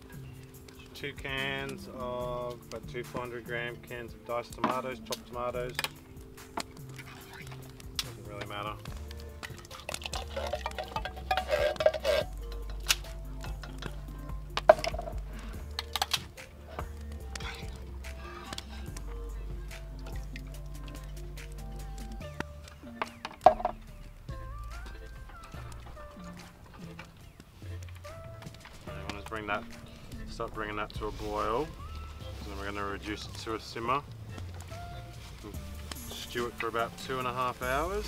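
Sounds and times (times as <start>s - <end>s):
background music with bass line: 0.0s - 38.0s
tomatoes pouring into a pot: 9.1s - 12.7s
spoon clinking on tin can: 9.7s - 12.8s.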